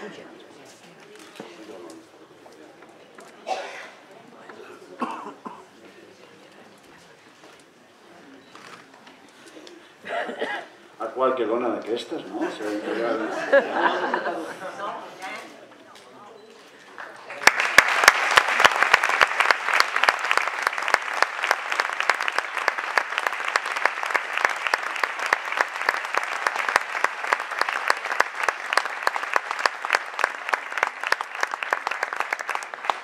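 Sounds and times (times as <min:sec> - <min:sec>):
audience applause: 0:17.0 - 0:33.0.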